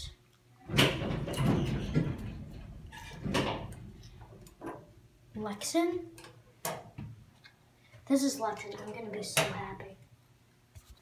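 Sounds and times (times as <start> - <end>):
elevator doors sliding: 0.7 - 4.9.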